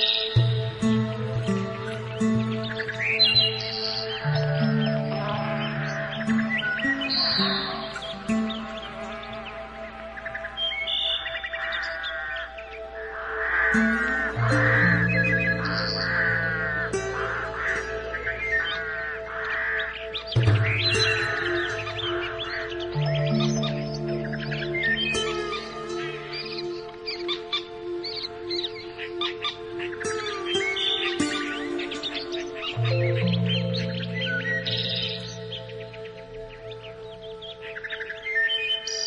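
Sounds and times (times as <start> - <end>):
birds chirping and singing: 0.0 - 39.0
calm ambient music: 0.0 - 39.0.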